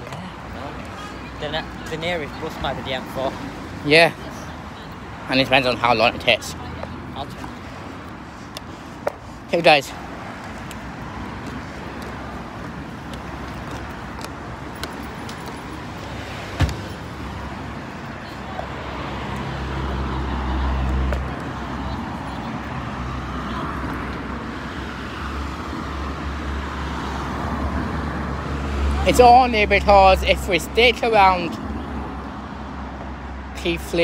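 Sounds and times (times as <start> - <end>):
traffic noise: 0.0 - 34.0.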